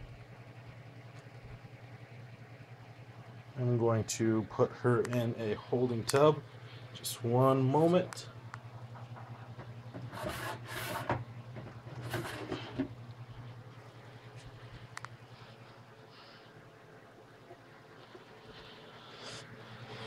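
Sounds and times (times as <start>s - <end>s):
plastic tubs rubbing and scraping: 10.0s - 13.0s.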